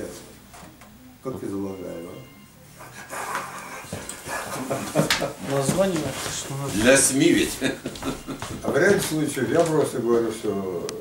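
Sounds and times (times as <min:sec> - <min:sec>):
people laughing softly: 0:02.8 - 0:05.6, 0:07.4 - 0:08.8.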